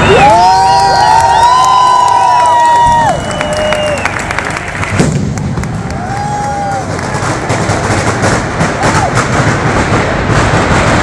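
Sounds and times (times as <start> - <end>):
firework whistles: 0.0 - 5.2
firecrackers crackling: 0.0 - 11.0.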